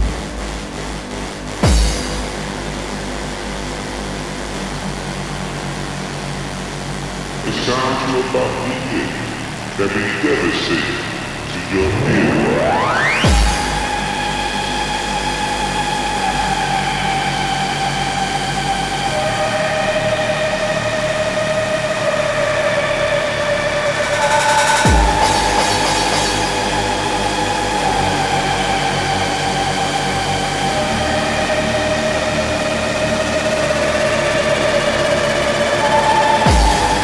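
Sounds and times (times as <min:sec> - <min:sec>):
deep falling bass sweep: 0:00.0 - 0:37.0
hardcore techno music: 0:00.0 - 0:37.0
held synth notes: 0:00.0 - 0:37.0.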